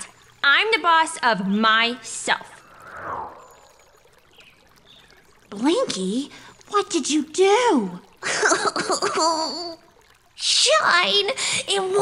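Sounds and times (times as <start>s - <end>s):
cartoon whoosh falling in pitch: 2.5s - 4.0s.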